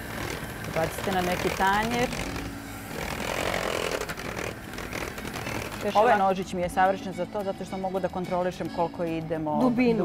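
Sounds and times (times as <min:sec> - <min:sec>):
electric hand mixer running: 0:00.0 - 0:06.5.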